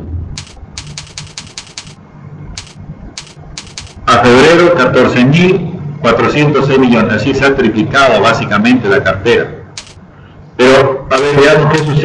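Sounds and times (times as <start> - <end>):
keyboard keys clicking: 0.4 - 2.0, 2.6 - 4.1, 9.8 - 10.0, 11.1 - 12.0.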